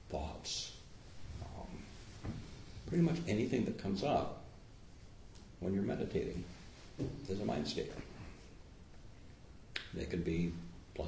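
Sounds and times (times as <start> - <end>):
man speaking: 0.0 - 0.8, 1.4 - 2.0, 2.9 - 4.5, 5.6 - 6.6, 7.2 - 8.2, 9.8 - 11.0.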